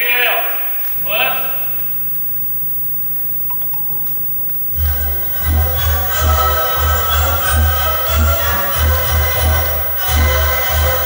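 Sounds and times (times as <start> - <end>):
march music: 3.5 - 11.0.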